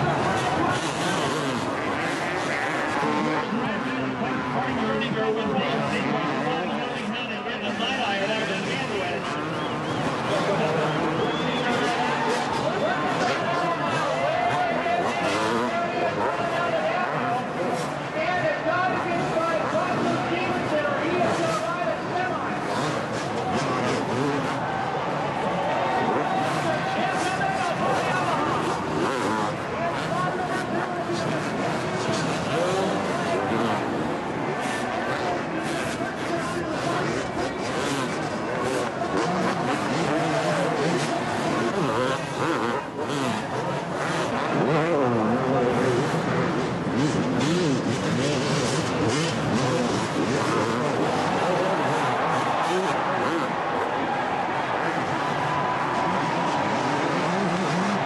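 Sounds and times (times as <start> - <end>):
motocross bike engines revving: 0.0 - 58.0.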